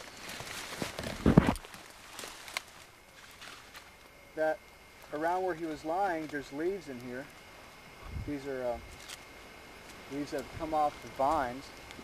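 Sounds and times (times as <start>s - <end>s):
crunching scrape: 0.0s - 3.9s, 8.9s - 9.2s
dry leaves rustling and crackling: 0.0s - 12.0s
small twig snaps: 0.7s - 4.1s, 8.9s - 10.5s.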